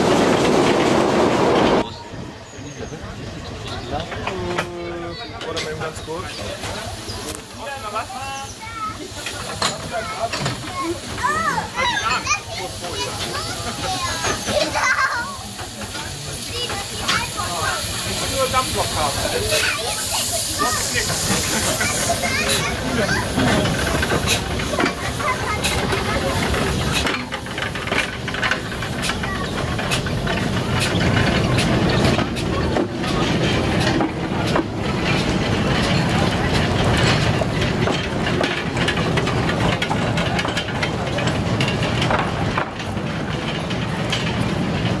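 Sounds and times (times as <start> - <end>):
steam locomotive hissing: 0.0 - 45.0
train coaches rumbling: 0.0 - 45.0
wheels clicking on track: 0.0 - 45.0.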